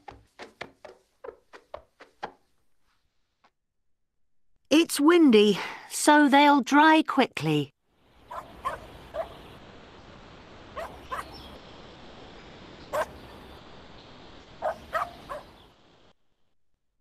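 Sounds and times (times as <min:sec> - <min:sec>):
steady background hiss: 0:06.2 - 0:16.2
dog barking: 0:08.3 - 0:09.4, 0:10.8 - 0:11.4, 0:12.9 - 0:13.2, 0:14.6 - 0:15.5.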